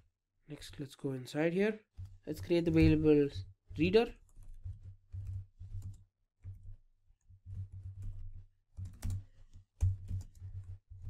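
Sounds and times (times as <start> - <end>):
typing on a keyboard: 4.2 - 6.8, 7.4 - 10.8.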